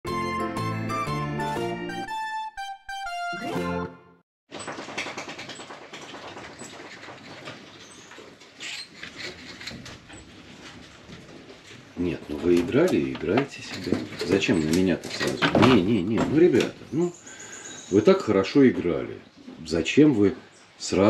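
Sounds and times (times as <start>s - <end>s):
intro music descending notes: 0.1s - 4.2s
marmosets scrambling in plastic bucket: 4.5s - 16.9s.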